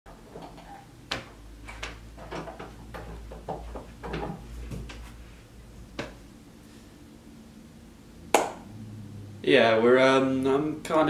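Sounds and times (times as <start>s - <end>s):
low steady hum: 0.1s - 11.0s.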